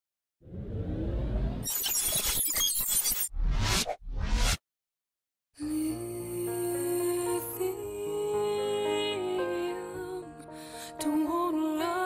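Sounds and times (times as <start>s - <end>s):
short rising whoosh: 0.4s - 1.7s.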